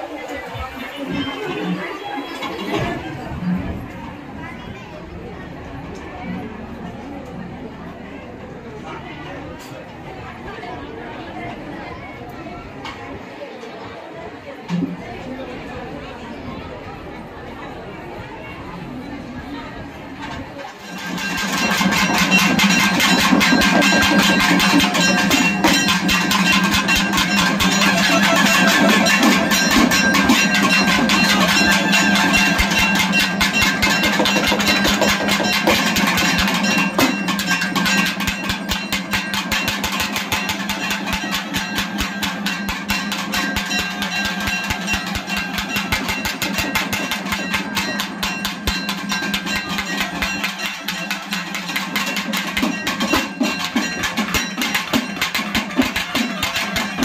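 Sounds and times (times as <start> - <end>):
drum ensemble playing fast beats: 20.8 - 57.0.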